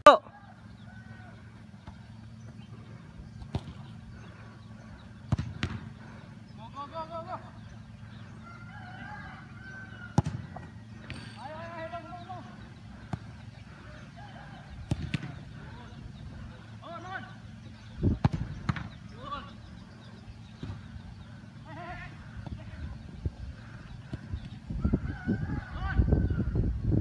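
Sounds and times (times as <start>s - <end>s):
footballs kicked thudding: 3.4s - 3.9s, 5.2s - 6.0s, 10.1s - 11.4s, 13.0s - 13.4s, 14.8s - 15.5s, 18.0s - 19.1s, 20.5s - 21.0s.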